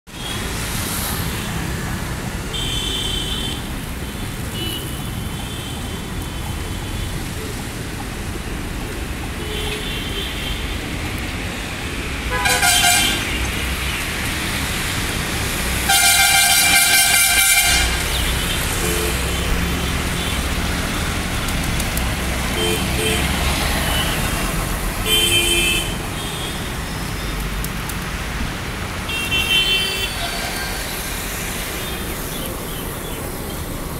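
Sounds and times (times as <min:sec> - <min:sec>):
traffic noise: 0:00.1 - 0:33.9
vehicle horn honking: 0:12.3 - 0:13.4, 0:15.9 - 0:20.4, 0:22.6 - 0:23.3, 0:25.0 - 0:26.7, 0:29.1 - 0:30.6.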